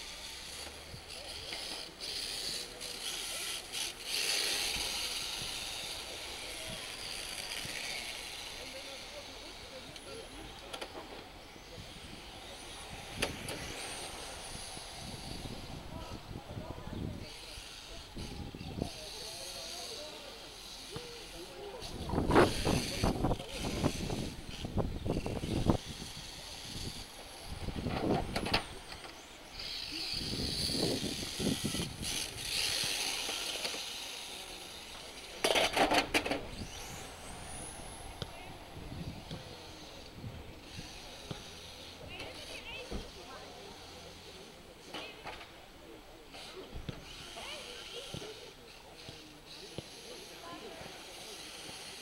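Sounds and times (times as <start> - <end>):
toy car motor whine: 0.0 - 45.4, 46.3 - 52.0
distant voices talking: 0.0 - 52.0.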